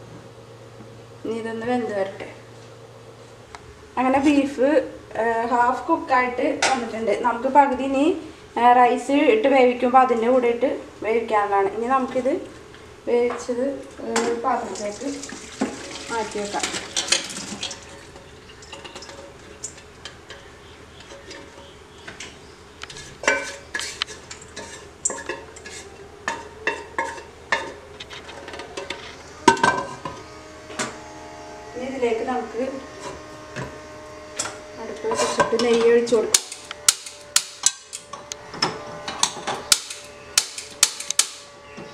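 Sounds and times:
pots and utensils clinking: 14.8 - 30.1.

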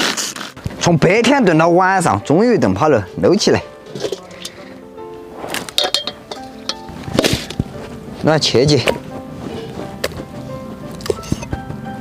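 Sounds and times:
background music with held notes: 0.4 - 12.0
chopsticks clinking on steel bowl: 5.7 - 7.6.

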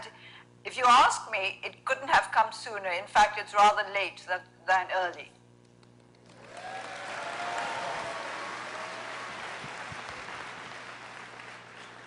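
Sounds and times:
audience applauding: 6.3 - 12.0.

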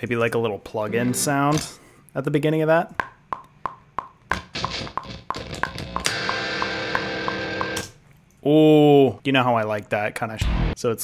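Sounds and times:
drum hits: 3.0 - 7.9
metronome clicking: 3.3 - 7.9
electric guitar chord: 4.6 - 7.9.

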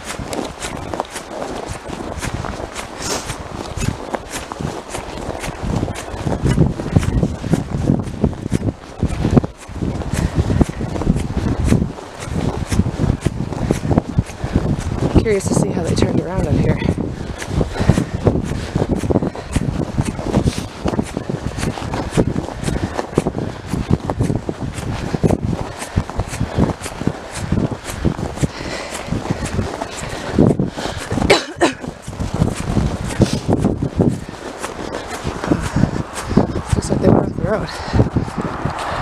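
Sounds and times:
footsteps on snow: 0.0 - 39.0
low rumble: 35.2 - 39.0.

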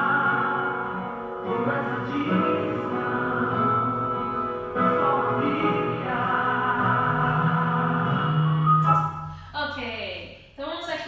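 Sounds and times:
choir singing gospel song: 0.0 - 8.6
woman speaking: 9.4 - 11.0.

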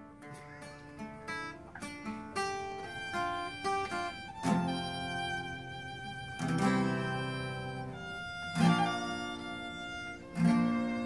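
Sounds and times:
acoustic guitar picking: 0.0 - 11.0.

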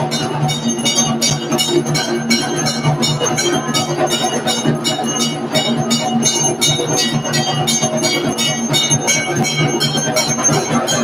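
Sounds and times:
bells ringing rhythmically: 0.0 - 11.0.

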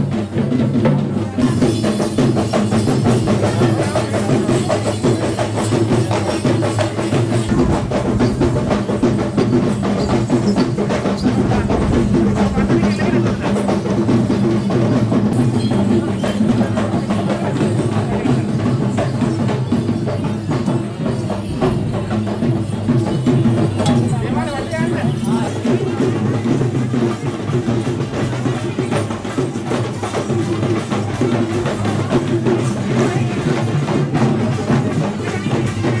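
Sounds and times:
drum-led percussion music: 0.0 - 36.0
sharp clacking hits: 7.4 - 14.5.

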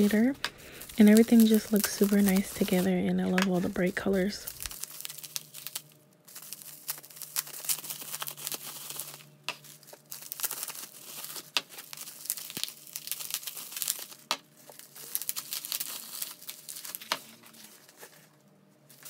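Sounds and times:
bubble wrap crinkling: 0.0 - 19.0.

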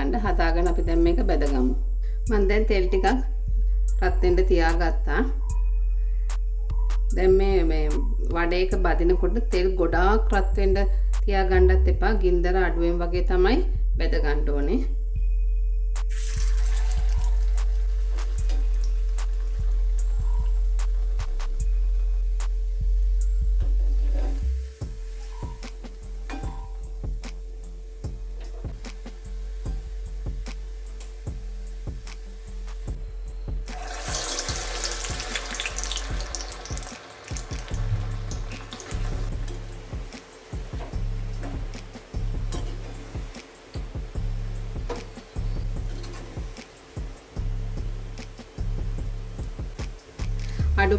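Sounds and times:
background music: 0.0 - 50.9
food sizzling in hot oil: 16.1 - 33.0, 33.6 - 50.4.

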